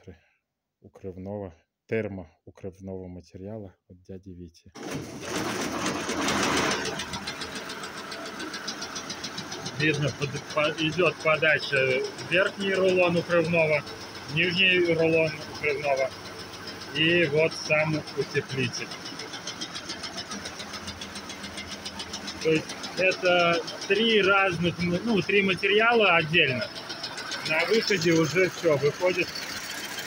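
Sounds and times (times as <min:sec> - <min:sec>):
quilting machine clattering: 0:04.8 - 0:30.0.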